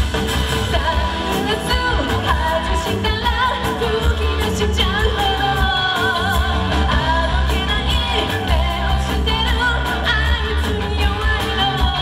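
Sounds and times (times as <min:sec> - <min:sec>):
live pop-rock band playing: 0:00.0 - 0:12.0
woman singing: 0:00.6 - 0:12.0.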